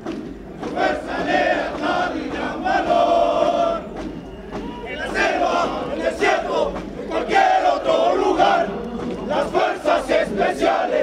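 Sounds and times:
soldiers chanting in unison: 0.6s - 11.0s.

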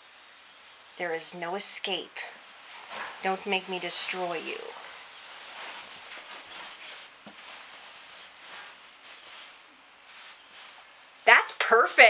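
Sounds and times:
faint rustling: 2.2s - 11.3s.

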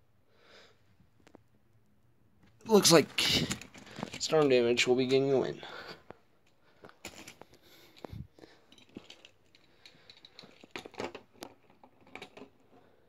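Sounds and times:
clicks of handling toy trucks: 6.8s - 12.9s.

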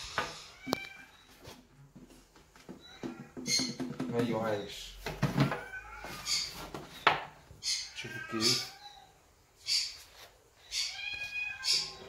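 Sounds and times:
cat meowing: 0.4s - 1.3s, 5.4s - 6.3s, 7.9s - 9.2s, 10.7s - 12.0s.

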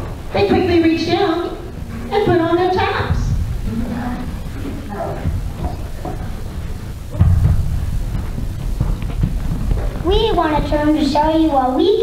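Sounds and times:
children's footsteps on stage floor: 0.0s - 12.0s.

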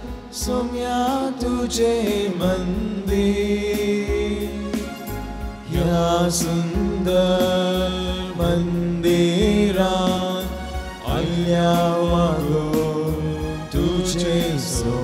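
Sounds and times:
hymn singing with accompaniment: 0.0s - 15.0s.

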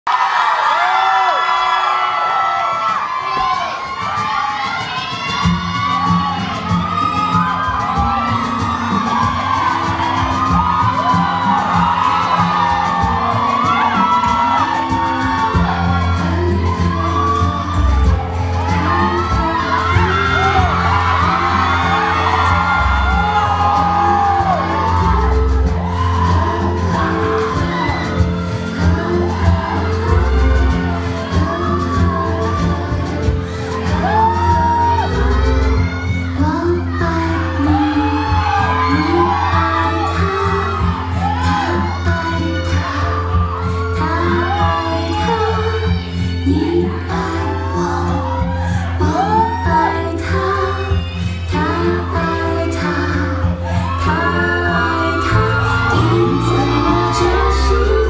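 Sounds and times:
audience cheering and screaming: 0.0s - 58.0s
dance music with bass: 4.6s - 58.0s.

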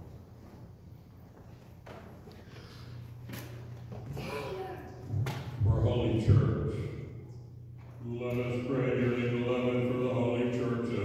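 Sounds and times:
man intoning a prayer: 5.6s - 7.2s, 8.0s - 11.0s.

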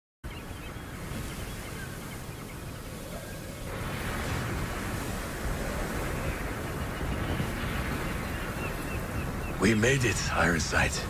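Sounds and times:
steady rushing outdoor noise: 0.2s - 11.0s.

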